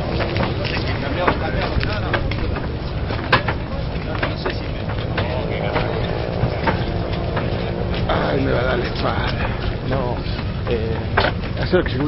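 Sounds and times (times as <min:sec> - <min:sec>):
faint chatter of people: 0:00.0 - 0:12.0
wind buffeting microphone: 0:00.0 - 0:12.0.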